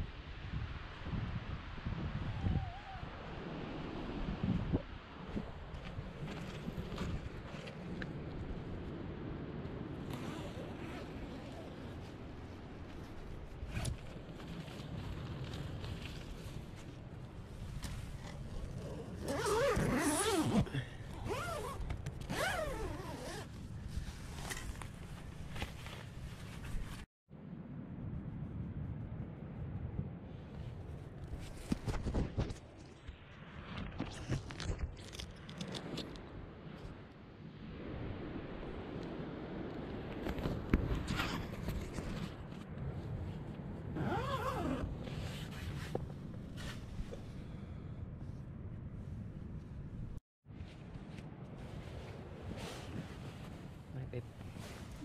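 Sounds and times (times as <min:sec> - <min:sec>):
zipper rasping: 0:18.2 - 0:23.5, 0:44.0 - 0:46.0
fabric rustling: 0:21.3 - 0:27.1.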